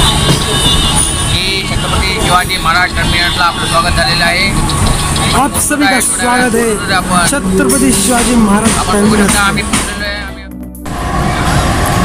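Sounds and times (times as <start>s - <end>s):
train running rumble: 0.0s - 12.0s
voices: 0.0s - 12.0s.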